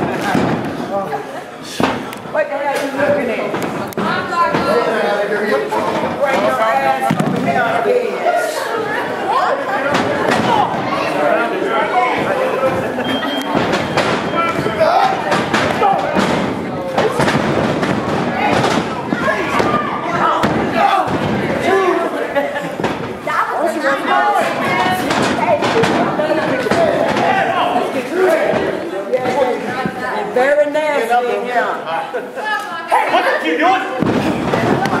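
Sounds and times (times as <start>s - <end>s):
crowd voices and shouting: 0.0s - 35.0s.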